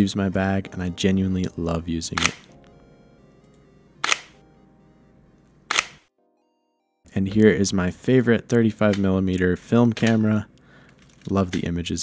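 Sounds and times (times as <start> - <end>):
quiet background music: 0.0 - 12.0
camera shutter click: 2.2 - 2.5, 4.0 - 4.4, 5.7 - 6.0.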